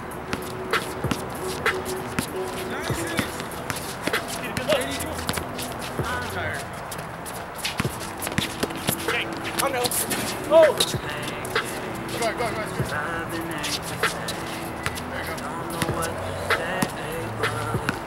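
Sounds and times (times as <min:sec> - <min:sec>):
distant calls from players: 0:00.0 - 0:18.0
basketball bouncing on concrete: 0:00.3 - 0:06.3, 0:07.7 - 0:09.9, 0:14.0 - 0:18.0
running footsteps and shoe scuffs: 0:00.3 - 0:18.0.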